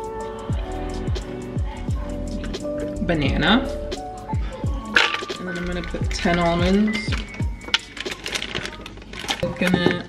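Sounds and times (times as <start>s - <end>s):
background music with a beat: 0.0s - 8.5s.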